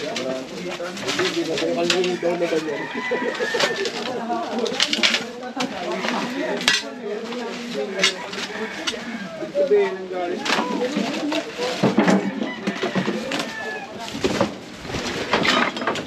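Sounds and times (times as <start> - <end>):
plastic buckets knocking: 10.4 - 16.0.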